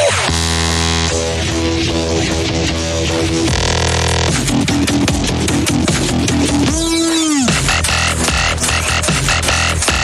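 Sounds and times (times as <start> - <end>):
pitch-bending synth bass: 0.0 - 10.0.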